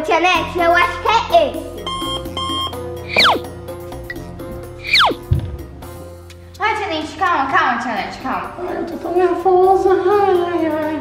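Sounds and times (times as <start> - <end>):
background music: 0.0 - 11.0
falling whistle: 1.9 - 3.5, 4.8 - 5.3
short electronic beeps: 1.9 - 3.5, 4.8 - 5.2.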